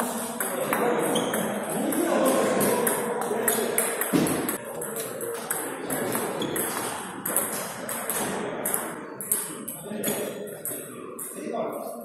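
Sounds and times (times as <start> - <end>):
table tennis balls clicking: 0.4 - 10.8.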